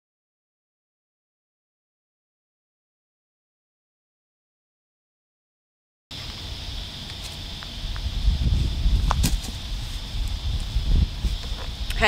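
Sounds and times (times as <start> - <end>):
wind buffeting microphone: 6.6 - 12.0.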